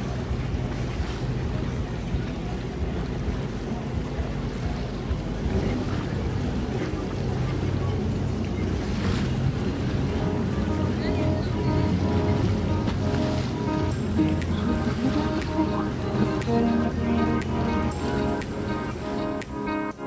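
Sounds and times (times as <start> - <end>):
boat motors rumbling: 0.0 - 20.0
music with held notes: 9.9 - 20.0.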